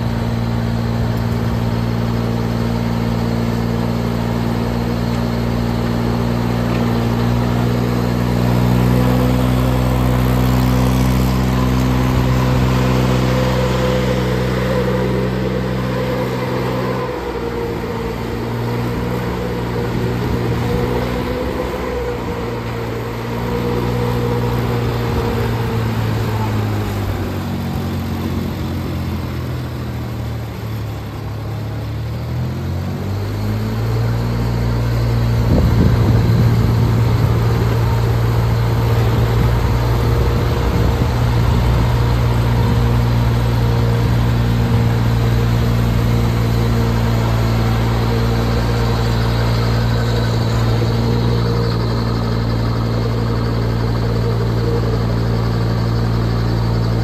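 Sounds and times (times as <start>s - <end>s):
diesel engine running: 0.0s - 57.0s
blower fan whining: 6.6s - 29.3s, 34.4s - 57.0s.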